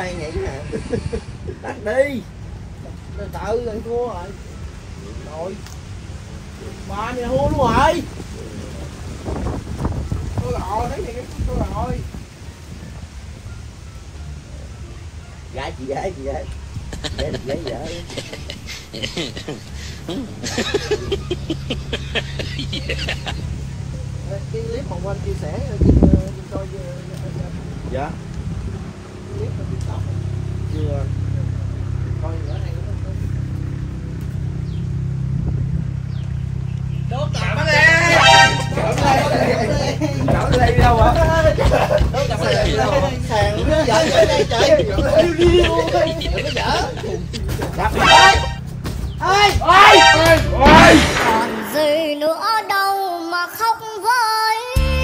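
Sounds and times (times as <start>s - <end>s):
wind buffeting microphone: 0.0s - 2.9s, 5.9s - 13.8s, 16.5s - 30.7s, 33.8s - 36.7s, 39.0s - 48.0s.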